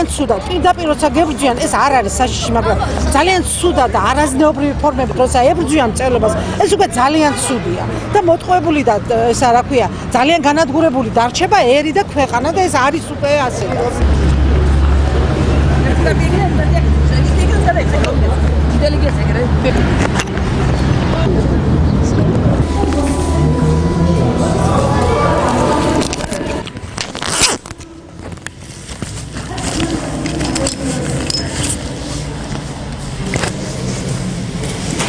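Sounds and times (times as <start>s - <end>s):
people talking over one another: 0.0s - 27.0s
vehicle engine rumbling: 0.0s - 35.0s
steady low rumble: 13.9s - 29.4s.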